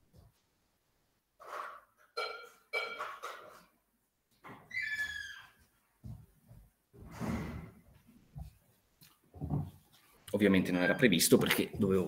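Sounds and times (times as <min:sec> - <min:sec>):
animal whining cries: 0:04.7 - 0:05.6.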